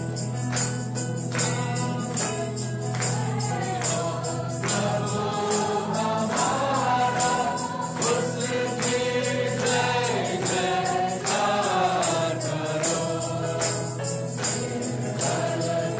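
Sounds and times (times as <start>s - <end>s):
choir singing gospel song: 1.3s - 15.9s.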